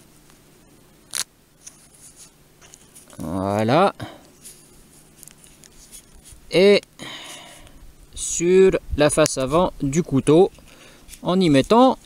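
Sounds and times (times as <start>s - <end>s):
tape rustle: 1.1s - 7.7s, 10.5s - 12.0s
light handling ticks: 1.1s - 7.8s, 9.2s - 12.0s.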